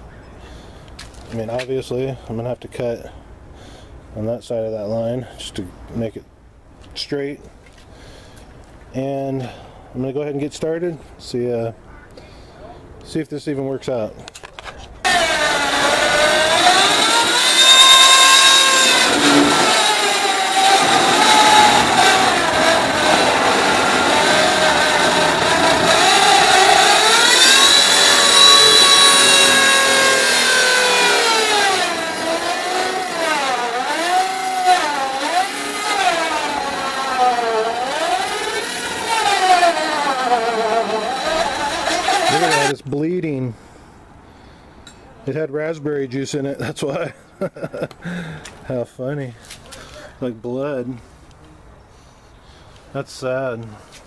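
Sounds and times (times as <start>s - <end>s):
circular saw cutting plastic: 15.0s - 42.8s.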